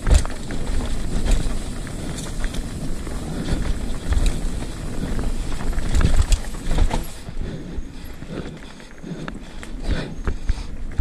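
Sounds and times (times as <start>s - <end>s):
bike rattling and knocking: 0.0s - 11.0s
tyres running over dirt: 0.0s - 11.0s
wind buffeting microphone: 0.0s - 11.0s.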